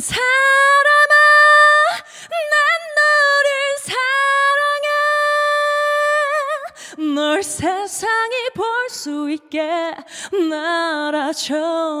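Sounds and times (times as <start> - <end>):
woman singing unaccompanied: 0.0 - 12.0
singer breathing in: 1.9 - 2.4, 6.7 - 7.0, 10.0 - 10.4.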